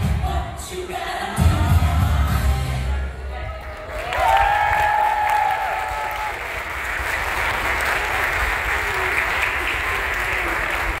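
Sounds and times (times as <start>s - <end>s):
audience applauding: 3.6s - 11.0s.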